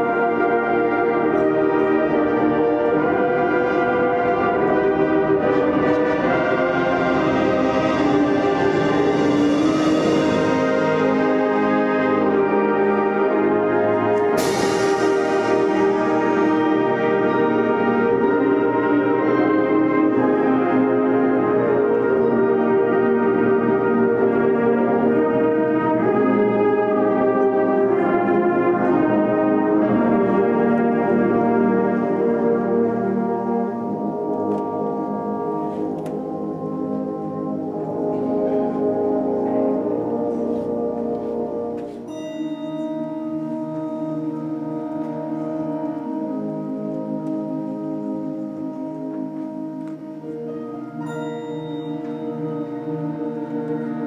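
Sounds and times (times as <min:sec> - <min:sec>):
concert band playing chords: 0:00.0 - 0:54.0.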